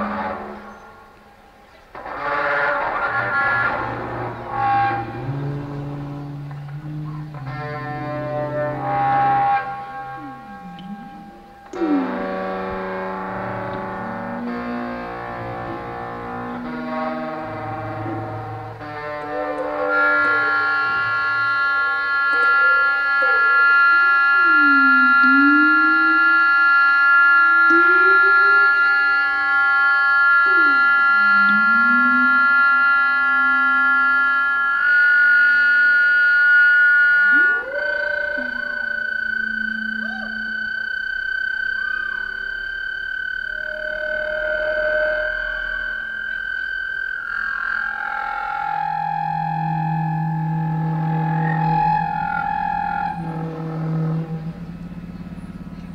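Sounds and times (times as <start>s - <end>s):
experimental electronic music: 0.0s - 55.9s.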